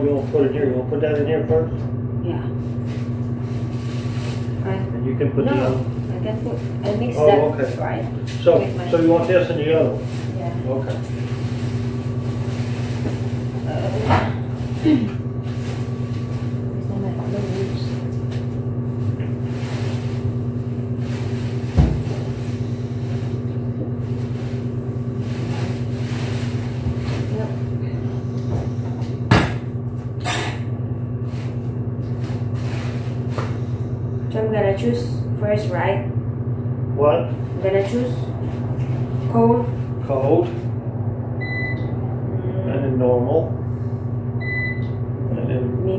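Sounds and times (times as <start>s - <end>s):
washers and dryers humming: 0.0s - 45.9s.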